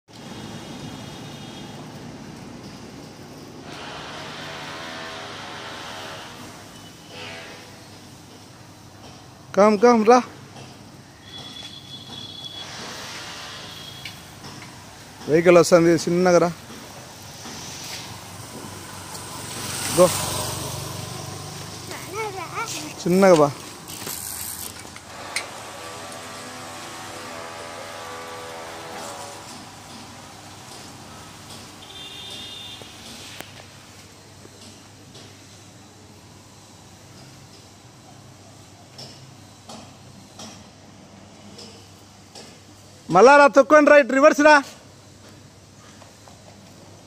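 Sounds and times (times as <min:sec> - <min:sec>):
traffic hiss and rumble: 0:00.1 - 0:47.0
motorcycle engine passing by: 0:18.1 - 0:23.1, 0:23.7 - 0:29.8.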